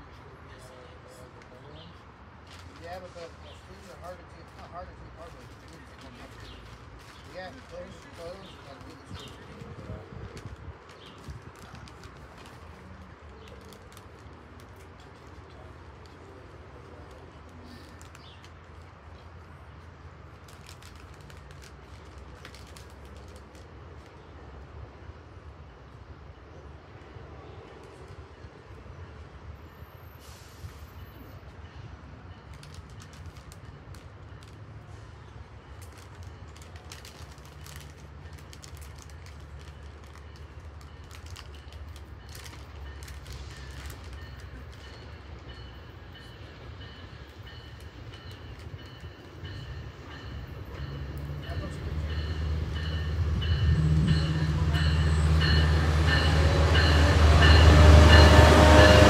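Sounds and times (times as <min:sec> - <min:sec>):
diesel train rumble: 0:00.0 - 0:59.0.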